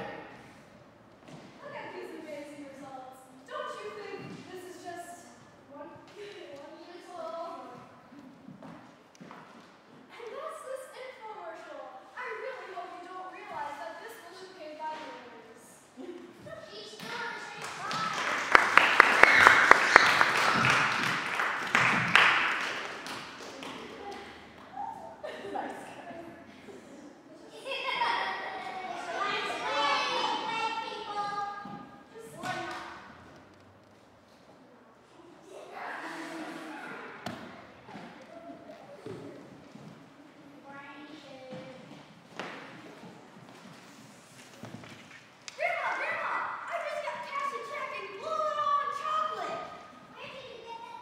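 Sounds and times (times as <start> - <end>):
children's voices: 0.0 - 0.9, 1.6 - 8.4, 10.0 - 21.4, 23.5 - 33.6, 34.7 - 42.1, 45.5 - 51.0
audience applauding: 17.6 - 24.2
sharp hand claps close by: 17.6 - 24.2.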